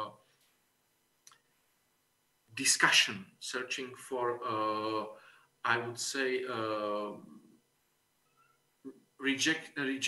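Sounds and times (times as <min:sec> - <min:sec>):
man's voice: 0:02.6 - 0:07.3, 0:09.2 - 0:10.0.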